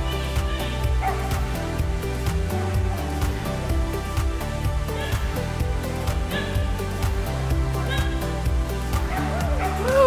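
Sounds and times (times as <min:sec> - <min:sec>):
background music: 0:00.0 - 0:10.0
dog barking: 0:05.0 - 0:05.2, 0:07.8 - 0:08.2.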